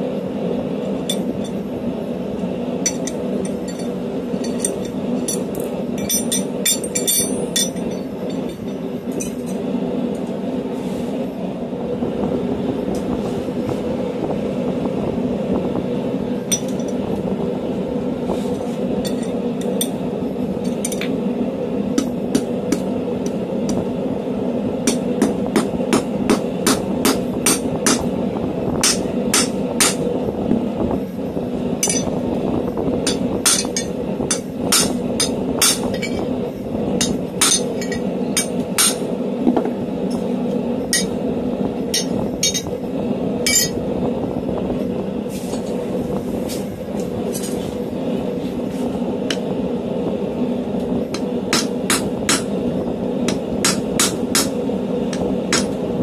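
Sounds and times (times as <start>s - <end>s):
steady hum: 0.0s - 56.0s
hammer striking metal on anvil: 24.9s - 28.1s, 28.8s - 30.0s, 31.8s - 32.1s, 33.1s - 36.2s, 37.0s - 39.0s, 51.2s - 52.5s, 53.3s - 55.8s.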